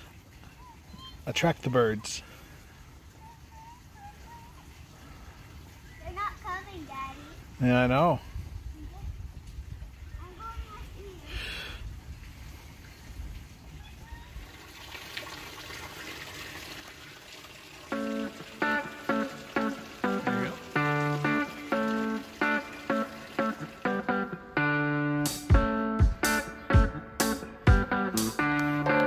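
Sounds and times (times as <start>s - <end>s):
faint outdoor background: 0.0s - 29.0s
music beat: 17.9s - 29.0s
picked guitar music: 17.9s - 29.0s.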